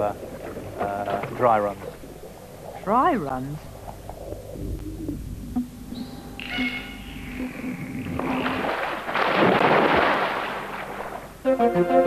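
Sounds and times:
water rushing and splashing: 7.4s - 11.4s.

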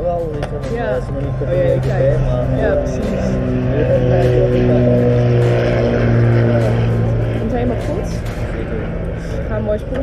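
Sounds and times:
faint voices: 0.0s - 10.0s
low engine hum: 0.0s - 10.0s.

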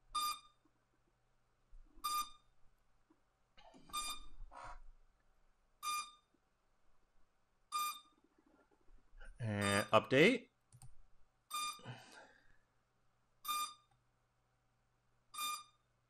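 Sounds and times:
short electronic beeps: 0.1s - 0.6s, 2.0s - 2.4s, 3.9s - 4.3s, 5.8s - 6.3s, 7.7s - 8.2s, 9.6s - 10.0s, 11.5s - 11.9s, 13.4s - 13.9s, 15.4s - 15.8s.

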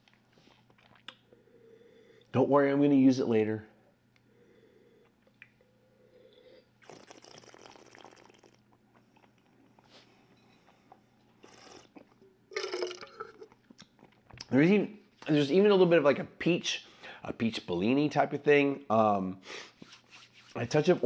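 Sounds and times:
slurping wine: 6.8s - 8.6s, 10.6s - 14.2s.

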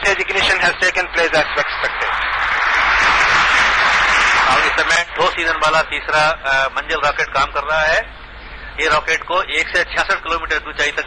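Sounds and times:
roomful of people applauding: 0.0s - 5.9s.

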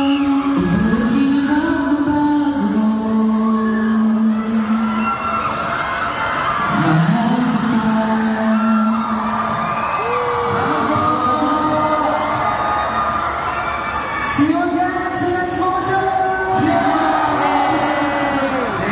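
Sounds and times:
music: 0.0s - 5.5s
fans whooping and cheering: 0.0s - 18.9s.

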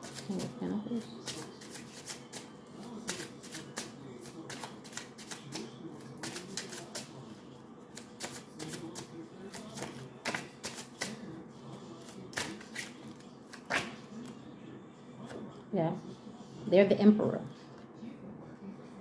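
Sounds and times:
cards being shuffled: 1.2s - 7.2s, 8.0s - 11.2s, 12.0s - 14.0s.

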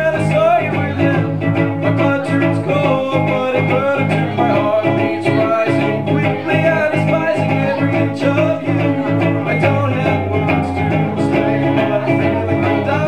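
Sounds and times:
picked guitar playing: 0.0s - 13.0s.

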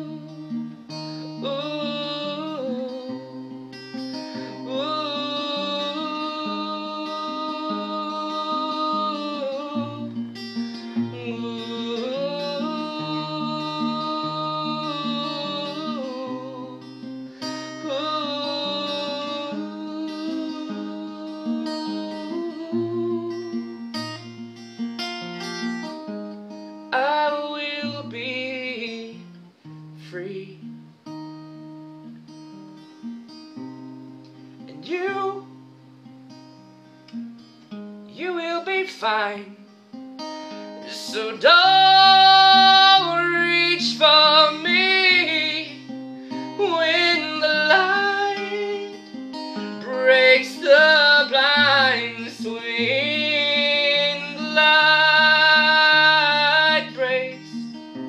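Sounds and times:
long held vocal notes: 0.0s - 24.0s, 40.6s - 58.0s
fingerpicked acoustic guitar: 0.0s - 58.0s.

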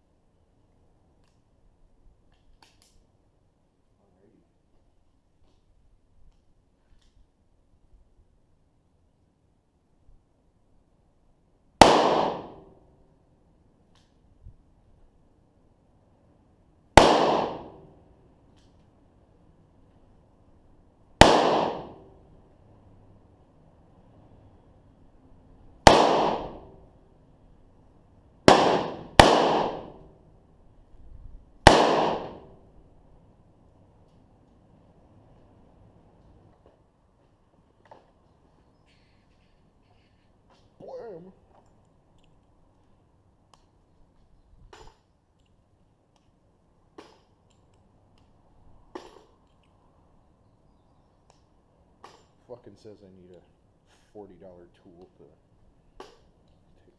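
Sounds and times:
revolver gunshots: 11.8s - 12.7s, 17.0s - 17.9s, 21.2s - 22.1s, 25.8s - 26.8s, 28.4s - 30.1s, 31.6s - 32.6s.

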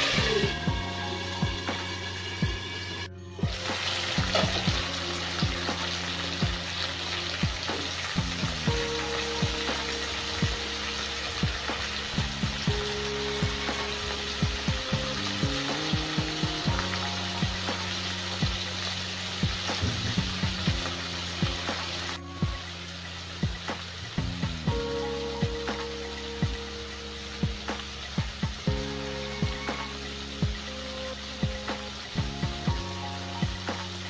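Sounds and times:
tomatoes sizzling in oil: 0.0s - 34.0s.

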